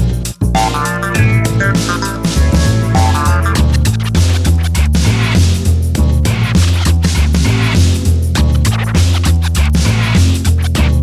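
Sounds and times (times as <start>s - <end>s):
music with heavy bass and beat: 0.0s - 11.0s.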